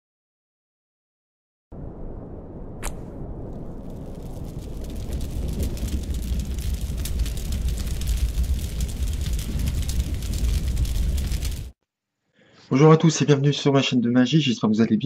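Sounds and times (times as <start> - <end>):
fire crackling and rumbling: 1.7 - 11.8.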